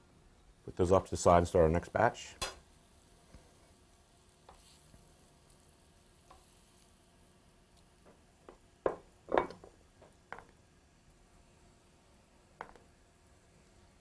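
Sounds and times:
fat sizzling in a frying pan: 0.4 - 14.0.

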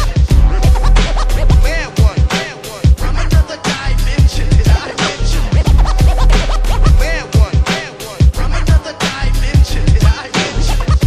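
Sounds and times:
turntable scratching: 0.0 - 2.6, 4.2 - 8.2, 10.1 - 11.0
hip hop beat: 0.0 - 11.0.

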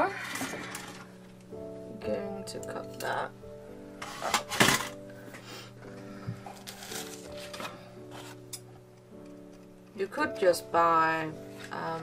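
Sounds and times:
soft background music: 0.0 - 12.0
scissors cutting paper: 6.6 - 8.4.

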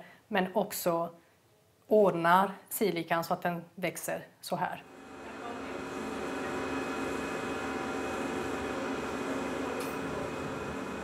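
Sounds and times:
laboratory equipment humming: 4.7 - 11.0.

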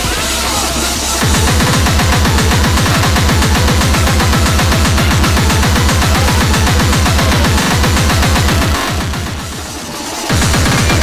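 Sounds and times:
distorted kick drums: 0.0 - 11.0
harsh noisy electronic layer: 0.0 - 11.0.

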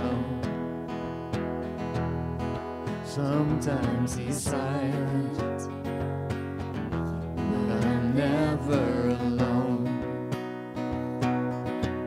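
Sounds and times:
person singing: 0.0 - 0.6, 3.0 - 6.1, 7.4 - 10.2
strummed acoustic guitar: 0.0 - 12.0.

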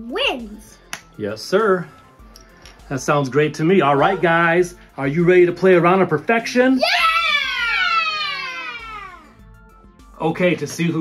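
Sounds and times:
children cheering: 6.8 - 9.4.

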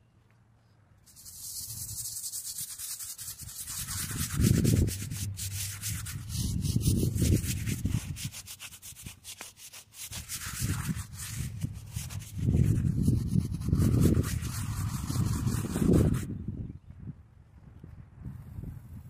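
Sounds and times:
brush scrubbing stone: 1.1 - 16.3
low rumbles: 4.0 - 8.0.

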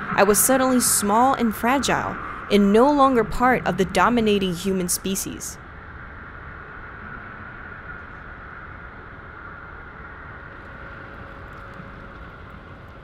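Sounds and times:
faint hum: 0.0 - 13.0
low rumbling drone: 0.0 - 13.0.

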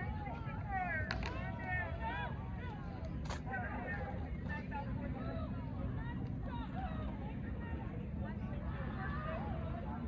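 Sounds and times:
people talking in background: 0.0 - 10.0.

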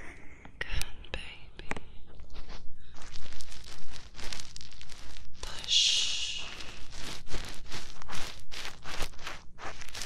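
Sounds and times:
soft whispering: 0.0 - 3.6, 5.2 - 7.3.

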